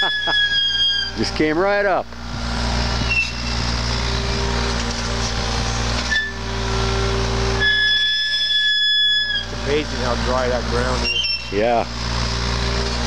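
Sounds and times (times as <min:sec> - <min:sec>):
excavator diesel engine under load: 0:00.0 - 0:08.1, 0:09.4 - 0:13.0
high steady whine: 0:00.0 - 0:13.0.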